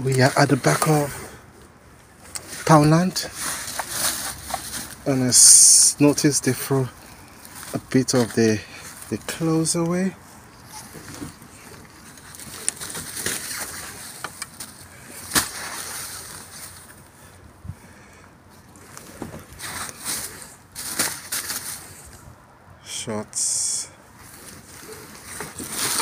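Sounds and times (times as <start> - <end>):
clothes rustling: 2.3 - 5.8
plastic bin bags crinkling: 10.9 - 17.0, 24.4 - 26.0.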